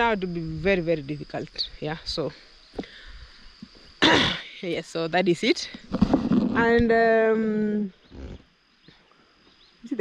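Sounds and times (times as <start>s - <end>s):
woman speaking: 0.0s - 2.4s, 4.0s - 5.8s, 6.6s - 8.0s
high-pitched insect drone: 0.0s - 10.0s.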